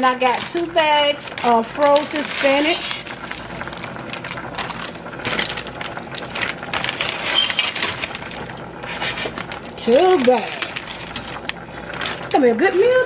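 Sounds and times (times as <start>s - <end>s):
crackles of frozen food and packaging: 0.0s - 12.8s.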